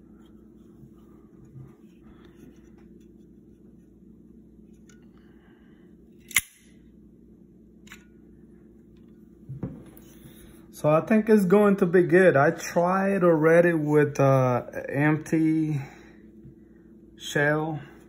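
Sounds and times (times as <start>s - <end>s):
faint room hum: 0.0s - 18.0s
sharp metal click: 6.2s - 6.7s.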